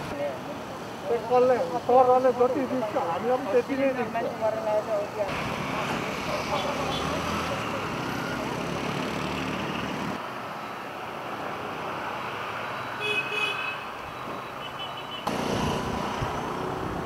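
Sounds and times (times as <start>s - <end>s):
street traffic: 0.0s - 17.0s.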